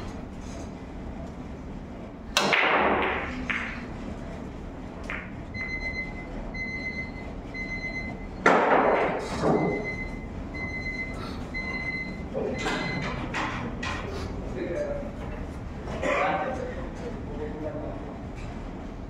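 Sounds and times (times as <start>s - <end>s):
pool balls clattering and rolling: 2.2s - 11.0s, 11.6s - 16.5s
cue ball cracking into balls: 2.3s - 3.9s, 5.0s - 5.4s
loud sharp knock: 2.4s - 3.3s.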